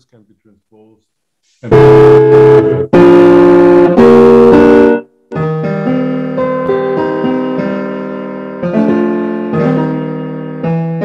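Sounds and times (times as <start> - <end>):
electronic keyboard chords: 1.6 - 11.0.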